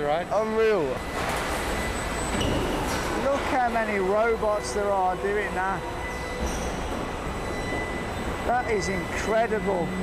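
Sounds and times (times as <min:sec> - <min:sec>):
assembly line machinery din: 0:00.7 - 0:10.0
thin high whine: 0:04.1 - 0:10.0.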